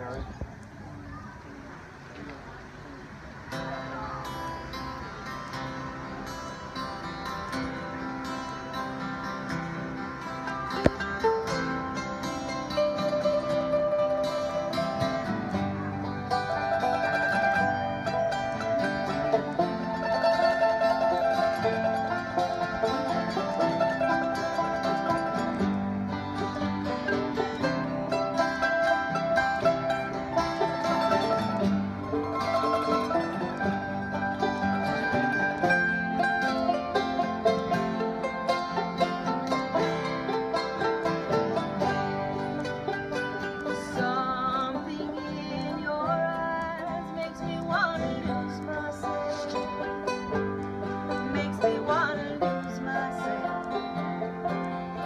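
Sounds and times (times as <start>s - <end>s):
bluegrass string band playing: 0.0s - 55.0s.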